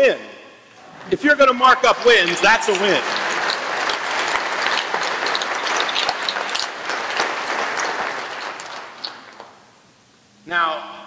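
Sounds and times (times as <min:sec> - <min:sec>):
audience applause: 0:00.8 - 0:09.7.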